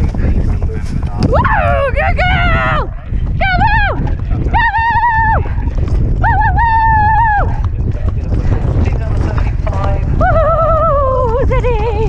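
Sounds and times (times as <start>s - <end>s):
horse hoofbeats galloping on turf: 0.0s - 12.0s
wind buffeting microphone: 0.0s - 12.0s.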